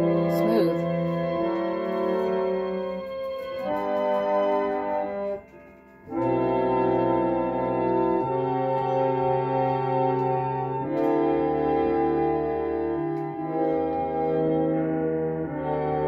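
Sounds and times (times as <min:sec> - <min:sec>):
reed pump organ chords: 0:00.0 - 0:16.0.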